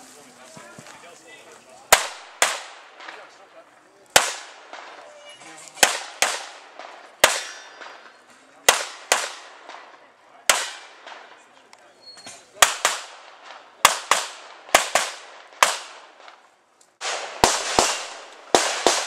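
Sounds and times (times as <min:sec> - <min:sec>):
pistol shots with echo: 0:01.9 - 0:03.4, 0:04.1 - 0:05.0, 0:05.8 - 0:11.6, 0:12.6 - 0:16.4, 0:17.0 - 0:19.0.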